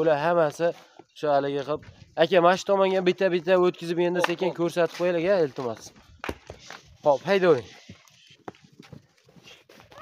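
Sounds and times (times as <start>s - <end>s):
sheep hoofsteps on dirt: 0.0s - 10.0s.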